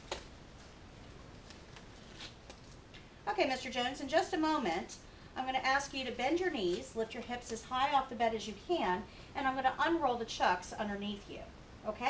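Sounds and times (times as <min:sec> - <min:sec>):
glove snapping: 0:00.0 - 0:00.4.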